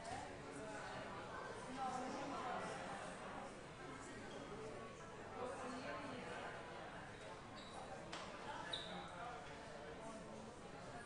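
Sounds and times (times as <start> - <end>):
brief high squeak: 8.7 - 9.0.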